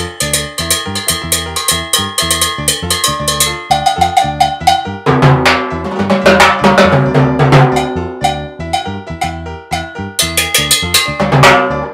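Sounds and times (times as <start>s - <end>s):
cowbell struck with stick: 0.0s - 11.9s
deep ringing drum strokes: 0.2s - 11.9s.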